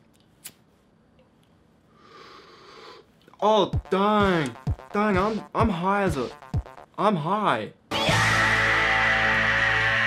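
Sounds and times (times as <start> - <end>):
person breathing in: 1.9 - 3.1.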